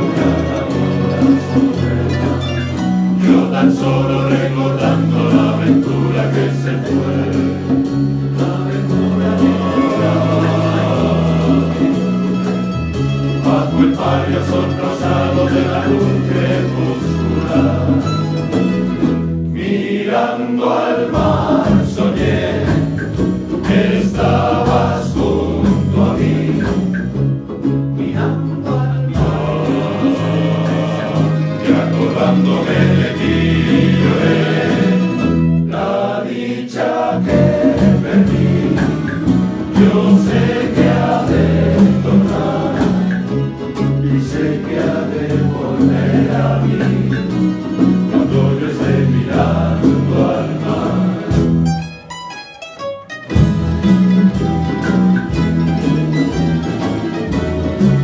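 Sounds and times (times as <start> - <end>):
keyboard bass line: 0.0 - 36.2, 36.8 - 52.3, 53.3 - 58.0
men's choir singing: 0.0 - 51.7
plucked string ensemble: 0.0 - 58.0.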